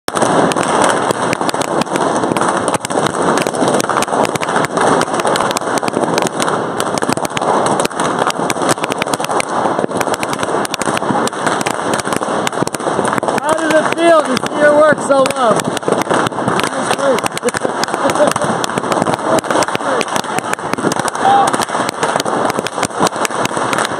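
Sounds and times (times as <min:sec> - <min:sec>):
balloons popping: 0:00.0 - 0:23.9
crowd stomping: 0:00.0 - 0:23.9
crowd shouting and chattering: 0:12.9 - 0:22.5.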